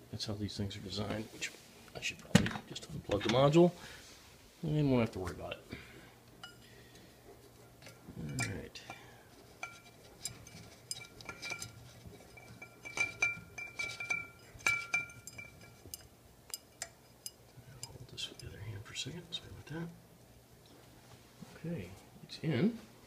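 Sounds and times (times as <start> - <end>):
glass shade clinking: 6.4 - 6.8, 7.6 - 18.8
glass ringing high tone: 11.3 - 15.7.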